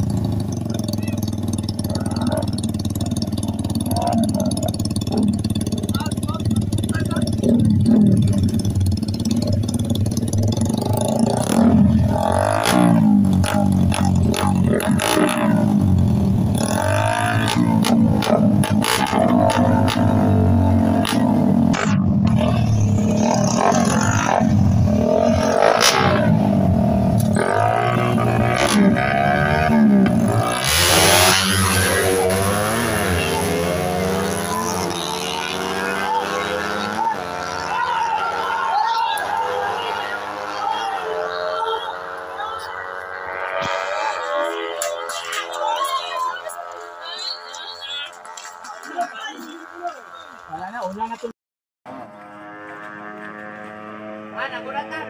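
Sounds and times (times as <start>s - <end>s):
crowd chatter: 0.0s - 15.8s, 16.4s - 51.3s
motorcycle engines revving: 0.0s - 51.3s, 51.9s - 55.0s.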